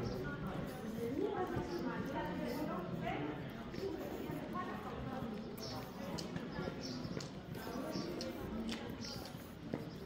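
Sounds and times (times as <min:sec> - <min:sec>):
footsteps on stone paving: 0:00.0 - 0:10.0
people chattering: 0:00.0 - 0:10.0.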